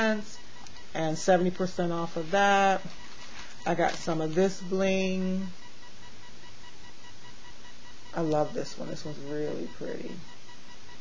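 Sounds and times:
faint high-pitched electronic tones: 0.0 - 11.0.

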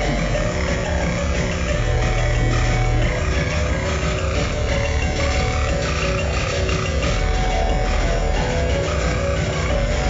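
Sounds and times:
low synth bass notes: 0.0 - 10.0
noisy synthesizer layer: 0.0 - 10.0.

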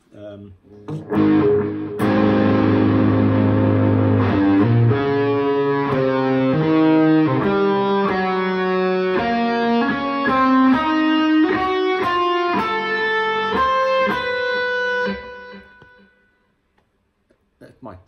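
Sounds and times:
electric guitar single notes: 0.7 - 16.3.

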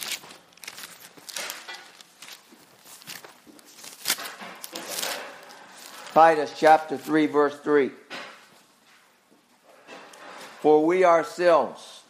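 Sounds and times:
pages being turned: 0.0 - 7.3.

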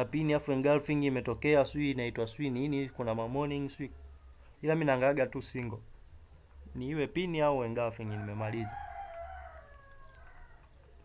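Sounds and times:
faint drawn-out animal call: 8.2 - 11.0.

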